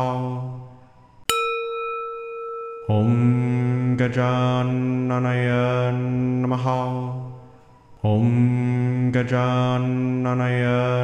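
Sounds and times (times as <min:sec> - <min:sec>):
meditation bowl ringing: 0:01.0 - 0:06.1.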